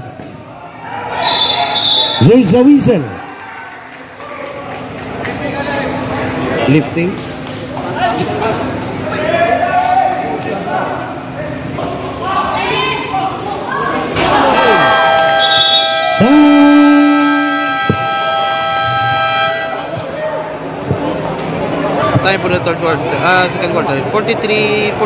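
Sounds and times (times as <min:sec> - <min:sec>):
crowd voices and shouting: 0:00.0 - 0:25.0
low horn blast: 0:14.6 - 0:20.0
electronic game buzzer: 0:14.7 - 0:19.8.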